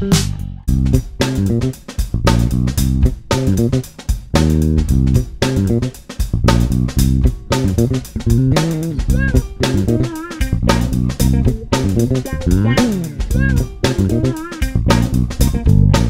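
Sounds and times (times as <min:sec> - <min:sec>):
electric bass plucked notes: 0:00.0 - 0:16.0.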